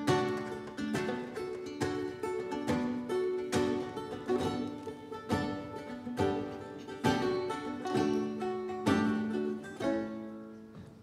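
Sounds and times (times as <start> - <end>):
acoustic guitar plucking: 0.0 - 11.0
banjo plucking: 0.0 - 11.0.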